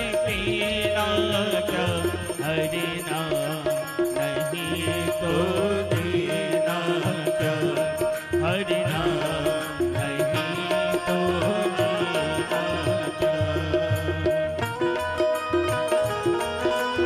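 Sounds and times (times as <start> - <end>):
man singing: 0.0 - 17.0
sustained keyboard notes: 0.0 - 17.0
tabla beat: 0.0 - 17.0.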